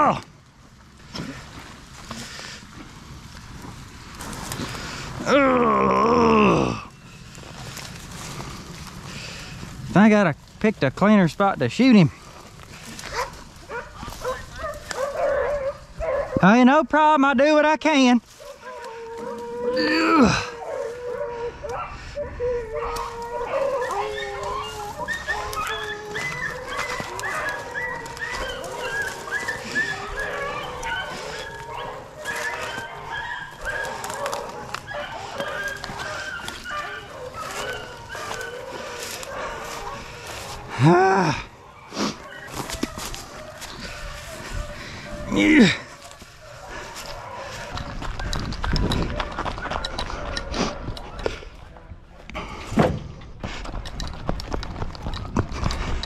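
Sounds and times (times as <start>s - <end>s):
dogs whining and yipping: 13.1s - 16.4s, 18.4s - 51.5s.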